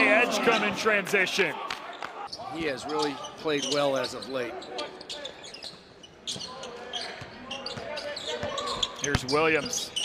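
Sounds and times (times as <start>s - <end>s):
voices of players and crowd: 0.0s - 10.0s.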